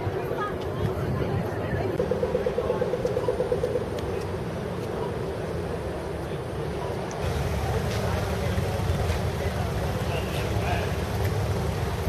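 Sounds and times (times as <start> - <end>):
car engines rumbling: 0.0 - 12.0.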